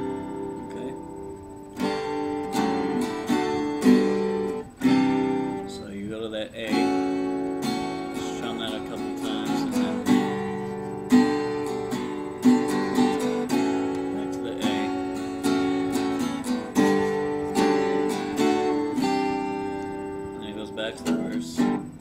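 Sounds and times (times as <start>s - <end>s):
acoustic guitar strumming chords: 0.0s - 22.0s.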